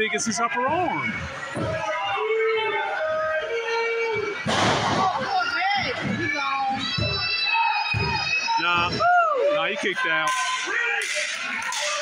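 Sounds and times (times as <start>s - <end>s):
crowd shouting in a hall: 0.0s - 12.0s
loud burst of crowd noise: 0.0s - 12.0s.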